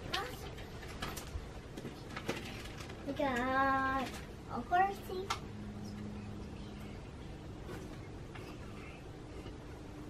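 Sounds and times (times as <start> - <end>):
small toys clicking and knocking: 0.0 - 4.3.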